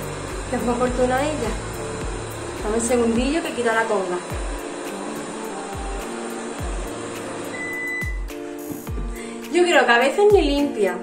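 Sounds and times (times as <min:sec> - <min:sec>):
background music with deep beat: 0:00.0 - 0:03.5, 0:04.3 - 0:09.5
robot vacuum running: 0:00.0 - 0:08.0
short high beep: 0:07.5 - 0:08.2.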